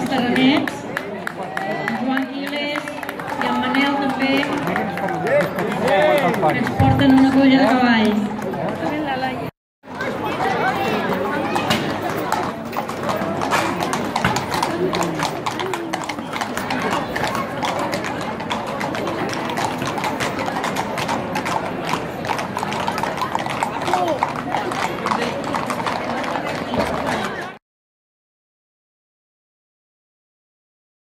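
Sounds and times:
hooves clip-clopping on stone: 0:11.6 - 0:27.4.

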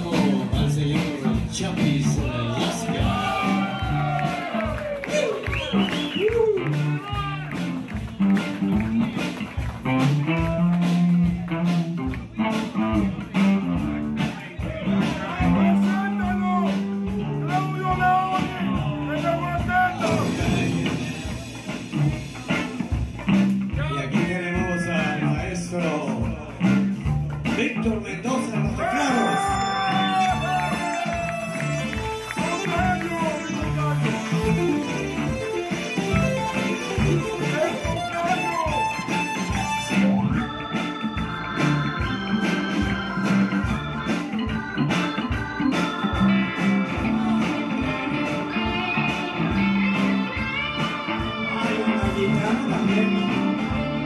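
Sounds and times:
drums keeping steady beat: 0:00.0 - 0:54.0
electric bass: 0:00.0 - 0:54.0
electric guitar lead with bent notes: 0:00.0 - 0:54.0.

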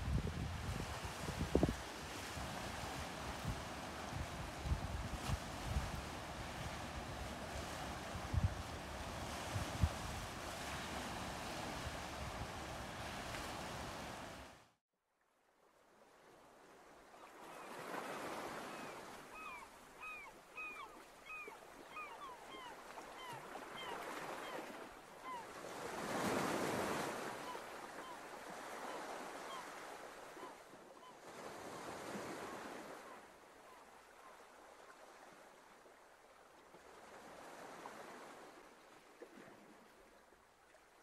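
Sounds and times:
sea waves washing in: 0:00.0 - 0:14.8.

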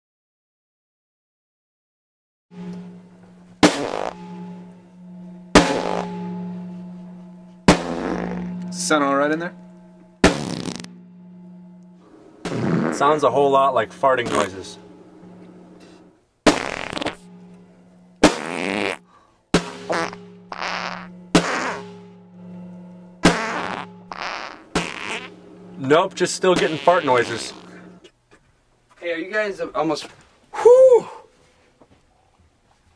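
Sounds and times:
low buzzing drone: 0:02.5 - 0:28.1
drum kit crashing hits: 0:02.6 - 0:06.8, 0:07.6 - 0:15.7, 0:16.4 - 0:17.5, 0:18.2 - 0:27.9
snare drum fart noises: 0:03.6 - 0:04.2, 0:05.6 - 0:06.1, 0:07.7 - 0:08.5, 0:10.3 - 0:10.9, 0:12.5 - 0:13.1, 0:16.5 - 0:17.2, 0:18.2 - 0:19.0, 0:19.6 - 0:21.9, 0:23.2 - 0:25.3, 0:26.6 - 0:27.7.

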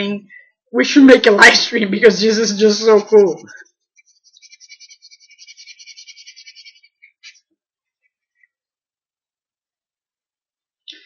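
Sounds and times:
pencil scratching on paper: 0:02.4 - 0:07.5.

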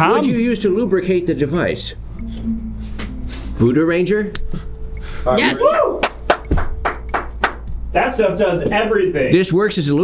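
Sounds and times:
hands clapping: 0:06.0 - 0:07.7.

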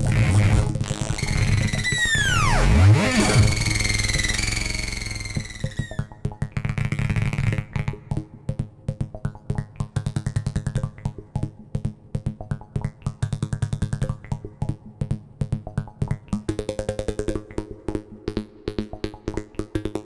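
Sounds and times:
low buzzing synth tone: 0:00.0 - 0:06.1
rapid clicking synth pulses: 0:00.0 - 0:06.1
higher synth tone: 0:01.1 - 0:06.1.

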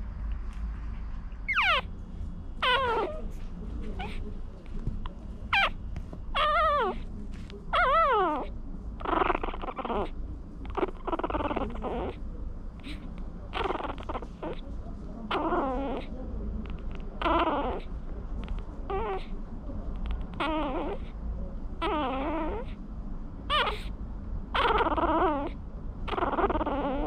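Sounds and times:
puppies squeaky whines and grunts: 0:01.4 - 0:01.9, 0:02.6 - 0:04.2, 0:05.5 - 0:07.0, 0:07.7 - 0:12.2, 0:12.8 - 0:14.6, 0:15.3 - 0:16.1, 0:16.7 - 0:17.9, 0:18.9 - 0:19.4, 0:20.0 - 0:21.1, 0:21.8 - 0:22.8, 0:23.5 - 0:23.9, 0:24.5 - 0:27.0.

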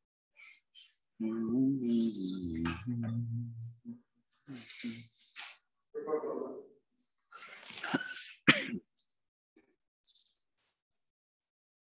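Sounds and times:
person clearing throat: 0:07.9 - 0:09.0.

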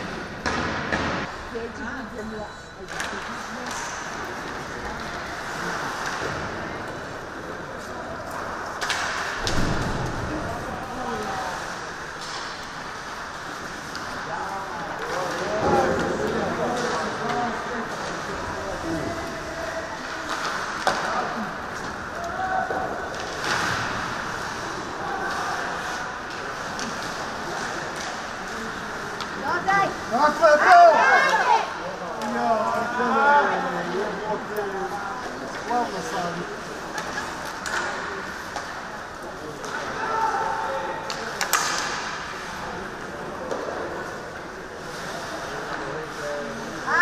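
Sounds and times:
sticks and puck clacking: 0:00.0 - 0:01.3, 0:02.9 - 0:32.4, 0:35.2 - 0:46.2
skates scraping ice: 0:02.9 - 0:47.0.

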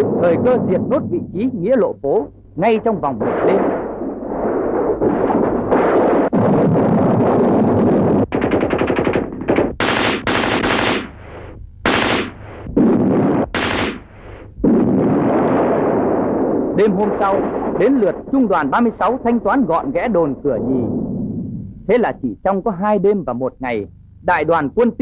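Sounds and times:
machine-gun fire bursts: 0:03.2 - 0:16.4.

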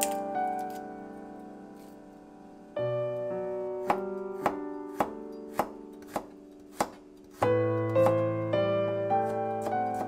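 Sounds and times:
soft piano music: 0:00.0 - 0:10.0
knife chopping on cutting board: 0:03.8 - 0:08.2, 0:09.2 - 0:10.0.

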